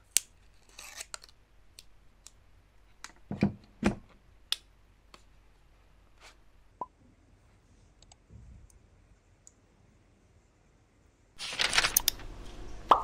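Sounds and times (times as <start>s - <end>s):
loud rustling: 11.4s - 12.4s.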